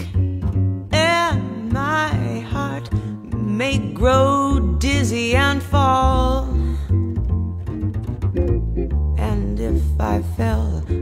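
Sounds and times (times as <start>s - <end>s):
plucked double bass: 0.0s - 11.0s
lighter plucked notes: 6.5s - 11.0s.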